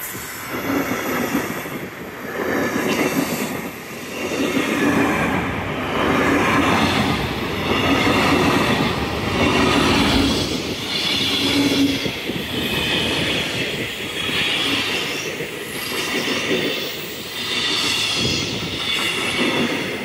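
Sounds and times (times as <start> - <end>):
train wheels rumbling and clattering: 0.0 - 20.0.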